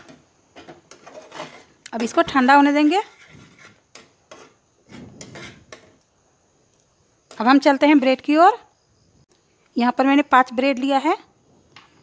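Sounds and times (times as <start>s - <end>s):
metal spatula scraping thick milk: 0.9s - 6.0s.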